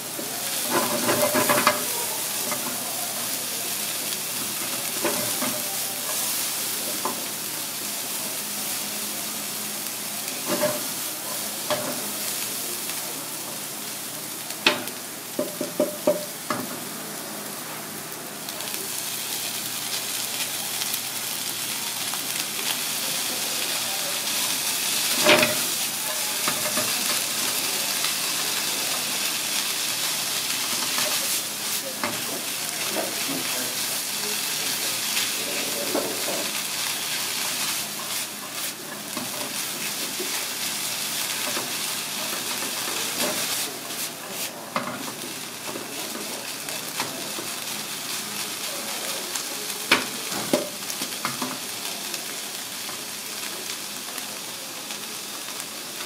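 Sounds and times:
vegetables sizzling in a frying pan: 0.0 - 56.0
spatula tapping the pan: 14.7 - 16.7.

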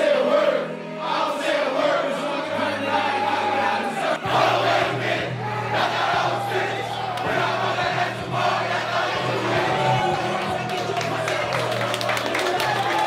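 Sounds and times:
music with steady bass: 0.0 - 13.0
players shouting and yelling: 2.9 - 13.0.

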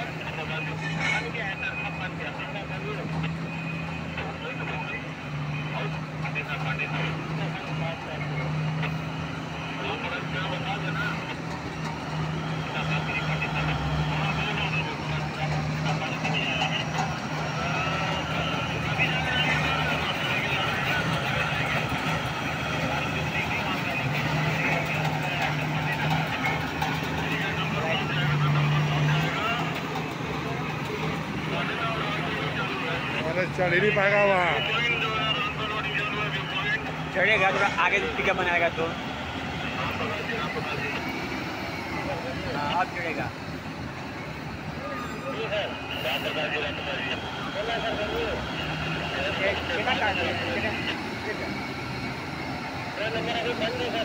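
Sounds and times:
heavy diesel engines running: 0.0 - 54.0.

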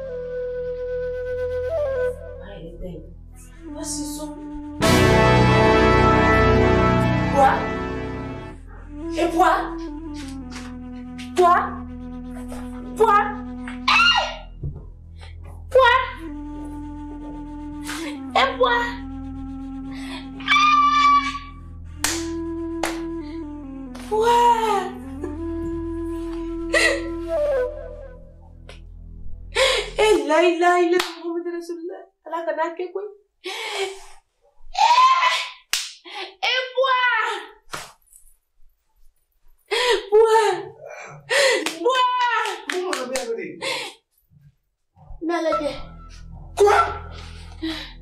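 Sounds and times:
mournful background music: 0.0 - 31.2, 45.3 - 48.0
hands slapping body: 17.8 - 18.1, 22.0 - 23.1, 35.7 - 36.0, 37.7 - 38.1.

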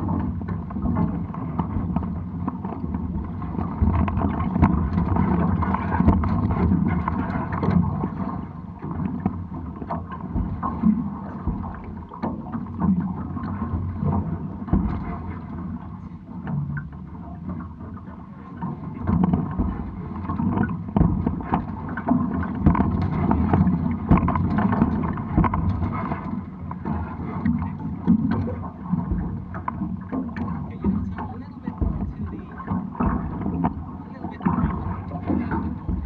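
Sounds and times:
water slapping against hulls: 0.0 - 36.0.

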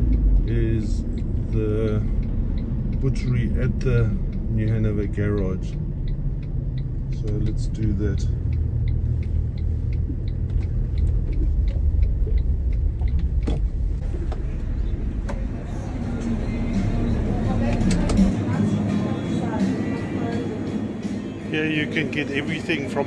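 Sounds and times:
voices inside a shop: 0.0 - 5.7, 14.0 - 23.0
vehicle road rumble: 0.0 - 23.0.

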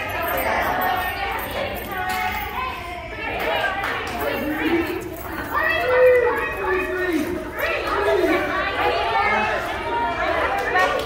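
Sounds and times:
adults chattering and calling out: 0.0 - 11.0.

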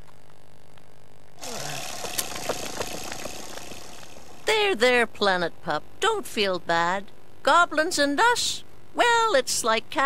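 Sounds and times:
wind-up toy car whirring: 1.4 - 4.5.

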